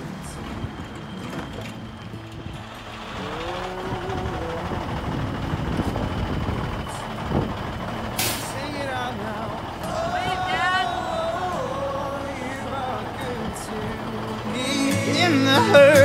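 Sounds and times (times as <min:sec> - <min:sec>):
diesel truck engine running: 0:00.0 - 0:16.0
air brake hiss: 0:08.2 - 0:08.6.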